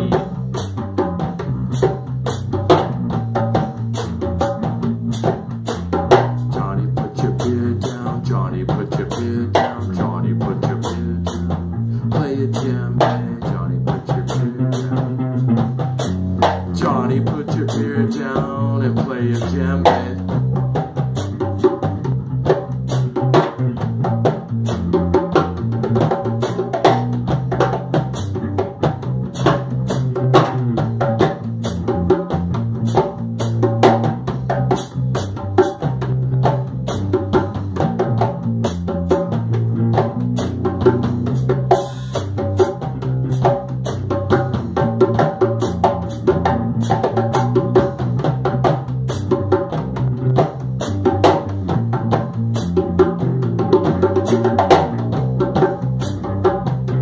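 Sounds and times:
drum kit beat: 0.0 - 57.0
instrumental band music: 0.0 - 57.0.

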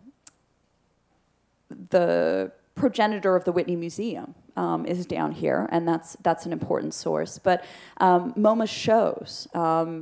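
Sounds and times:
woman speaking: 1.7 - 10.0.

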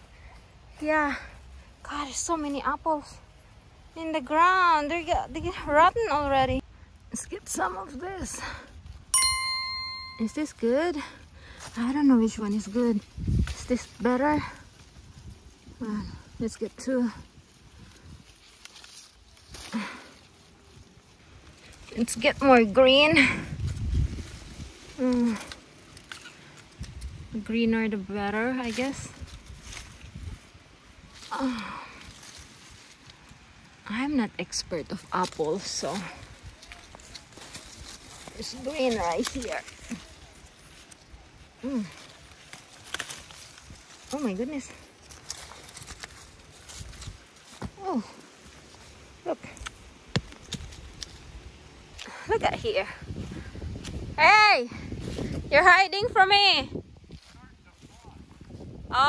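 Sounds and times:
leaves and branch rustling: 0.0 - 59.0.

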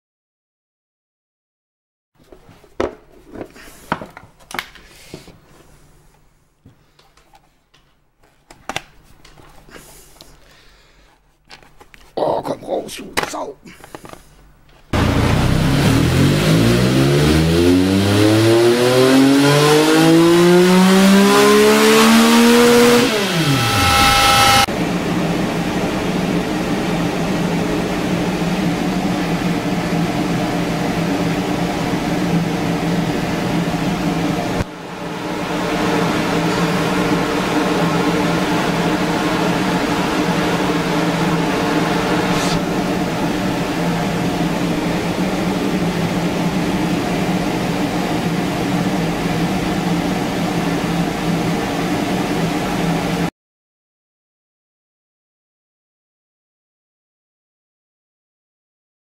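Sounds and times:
steady mechanical hum: 22.5 - 53.3.

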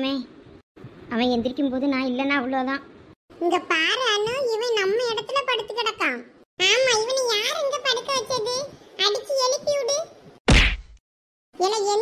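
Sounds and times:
cartoon whack with low thud: 10.5 - 11.0.

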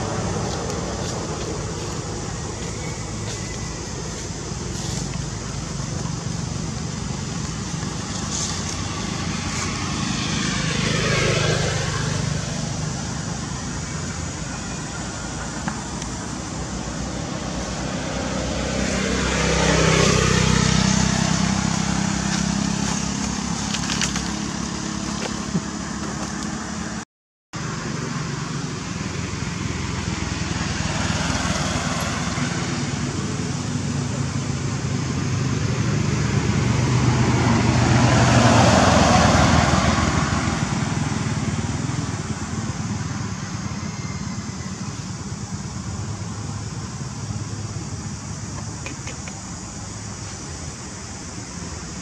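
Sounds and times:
vehicles passing close by: 0.0 - 27.0, 27.6 - 52.0
road traffic noise: 0.0 - 52.0.

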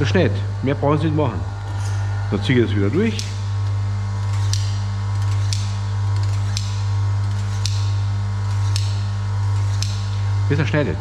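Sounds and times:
low electric hum: 0.0 - 11.0.

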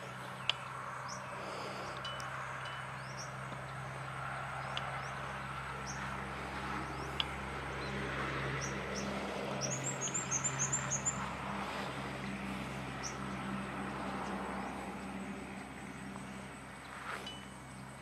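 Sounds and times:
steady low drone: 0.0 - 18.0
bird chirping: 8.6 - 13.3.

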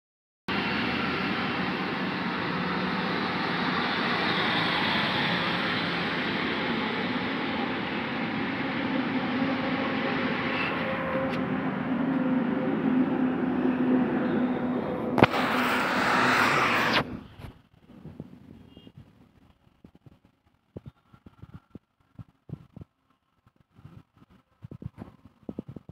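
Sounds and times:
vehicle running noise: 0.5 - 21.9
bright hiss: 15.2 - 17.1.

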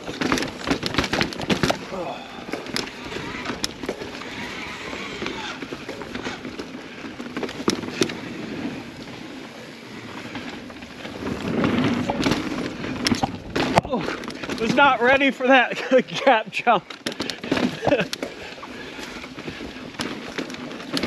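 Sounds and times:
bike knocking and rattling: 0.0 - 21.0
tyre and wind rush: 0.0 - 21.0.

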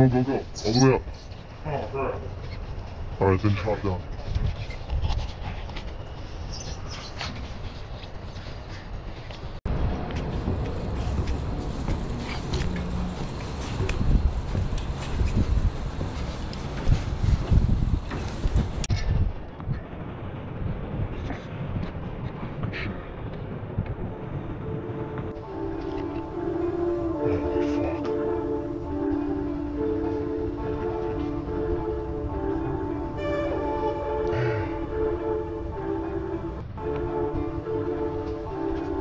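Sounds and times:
low rumble: 9.6 - 39.0.

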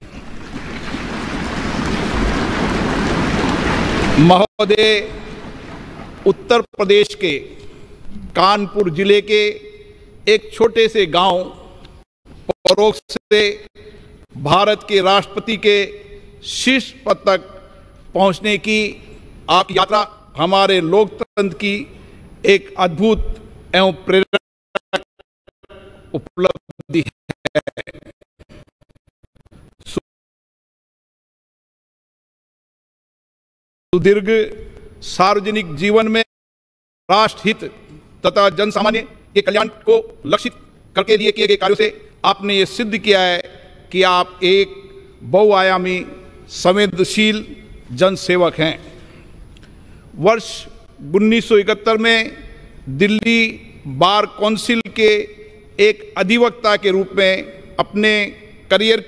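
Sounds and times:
large audience applauding: 0.4 - 4.2
glitching broadcast speech: 25.7 - 28.2.

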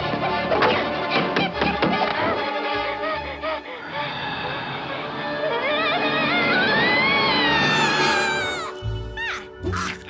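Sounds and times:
cartoon cat screaming: 6.0 - 10.0.

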